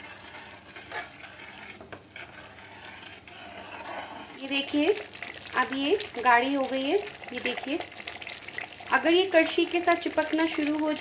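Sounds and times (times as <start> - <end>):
metal ladle scraping metal pan: 0.0 - 4.9
thick chutney bubbling: 4.4 - 11.0.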